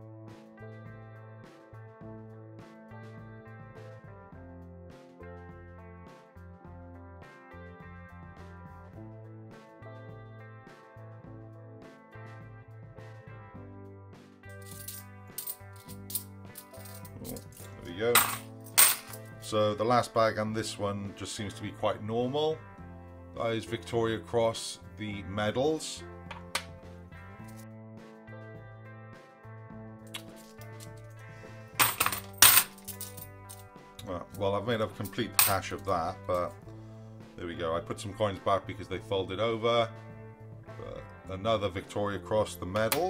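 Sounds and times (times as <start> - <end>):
background music: 0.0 - 43.0
coins clinking and rattling: 14.5 - 19.3, 30.1 - 31.1, 31.8 - 33.7, 35.0 - 35.6.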